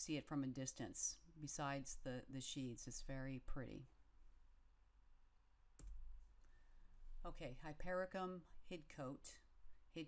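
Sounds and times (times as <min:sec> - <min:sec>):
computer mouse click: 0:05.8 - 0:06.6.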